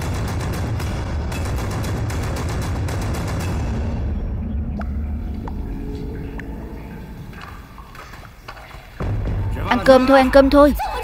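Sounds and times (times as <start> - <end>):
low rumble: 0.0 - 10.6
water drops plinking: 4.8 - 9.0.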